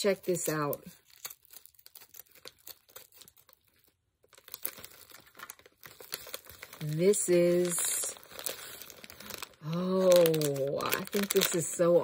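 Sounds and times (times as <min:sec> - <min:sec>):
scissors cutting plastic: 0:00.0 - 0:11.8
plastic packaging crinkling: 0:00.0 - 0:12.0.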